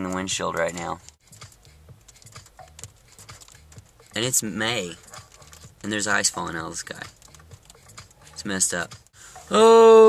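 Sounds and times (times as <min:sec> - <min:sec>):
ice pellets and rain ticking on windshield: 0:05.1 - 0:08.2.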